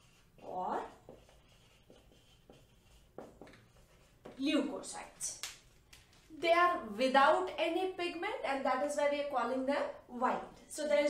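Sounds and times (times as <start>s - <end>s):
marker pen on whiteboard: 0.0s - 10.0s.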